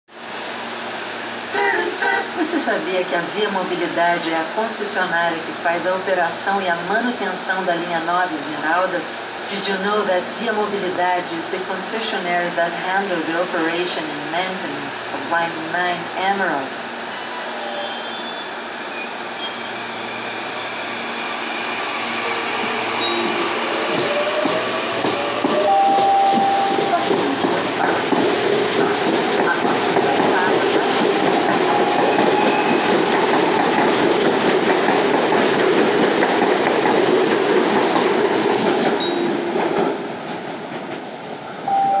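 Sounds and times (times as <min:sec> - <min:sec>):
train wheels clacking over rails: 0:22.6 - 0:41.1.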